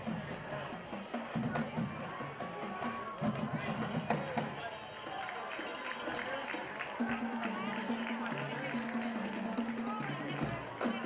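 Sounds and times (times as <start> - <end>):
chatter of voices: 0.0 - 11.0
marching band playing: 0.0 - 11.0.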